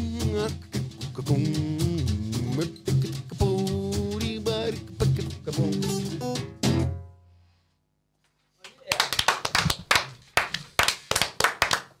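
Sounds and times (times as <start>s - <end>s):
people clapping: 8.6s - 12.0s.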